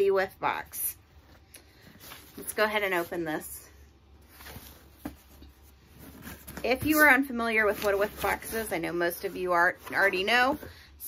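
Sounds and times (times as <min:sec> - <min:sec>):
cardboard box handling: 0:04.3 - 0:08.7.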